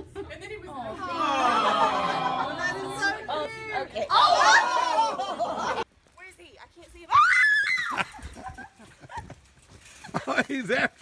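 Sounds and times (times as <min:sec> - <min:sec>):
woman screaming: 0:07.1 - 0:08.1.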